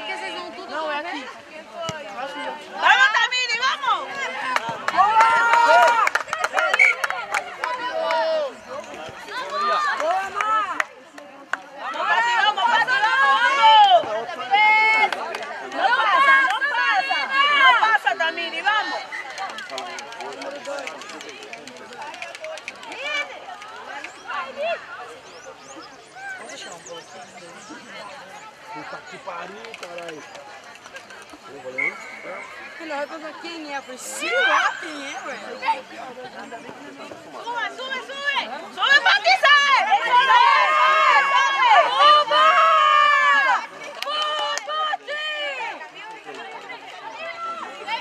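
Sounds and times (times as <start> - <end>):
outdoor chatter: 0.0 - 48.0
women shouting: 37.5 - 45.8.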